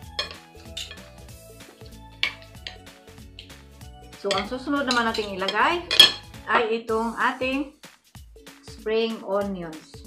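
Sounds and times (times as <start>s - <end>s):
cutlery clinking on ceramic plate: 0.0s - 3.6s, 4.2s - 6.4s
soft background music: 0.0s - 10.0s.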